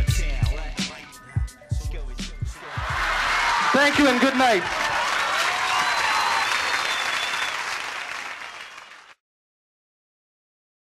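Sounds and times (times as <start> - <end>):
crowd applauding and cheering: 2.6 - 9.2.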